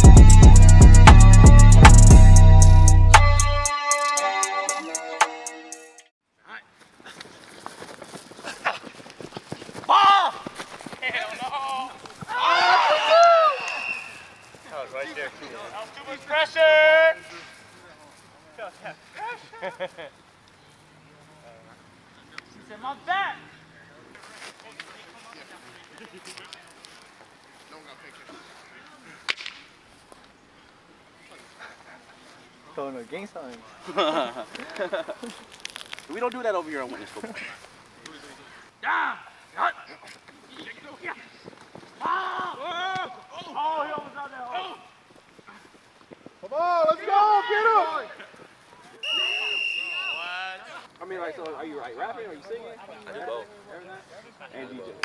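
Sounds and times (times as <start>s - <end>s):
footsteps on grass: 6.7s - 12.9s, 13.8s - 16.4s, 17.2s - 21.6s, 24.0s - 38.7s, 39.3s - 46.5s
loud shout: 9.9s - 10.5s, 11.5s - 14.2s, 38.8s - 39.4s, 42.0s - 43.9s, 46.6s - 48.1s
sharp snap: 29.3s - 29.7s.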